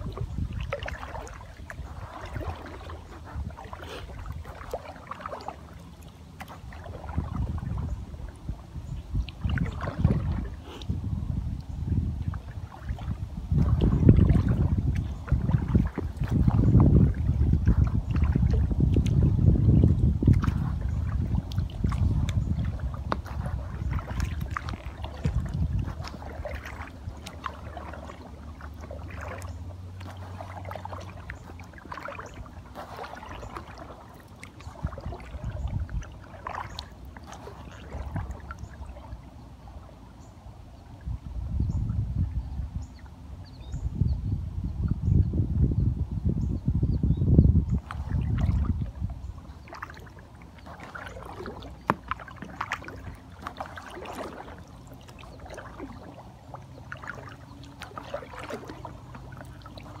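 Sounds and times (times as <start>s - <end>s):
paddle splashing water: 0.0s - 43.9s, 47.6s - 60.0s
water lapping at kayak hull: 0.0s - 60.0s.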